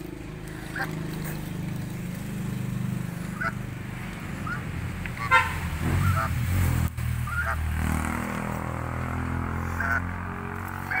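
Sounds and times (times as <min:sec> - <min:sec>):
geese honking: 0:00.5 - 0:01.4, 0:03.2 - 0:03.7, 0:04.3 - 0:06.4, 0:07.2 - 0:07.7, 0:09.4 - 0:11.0.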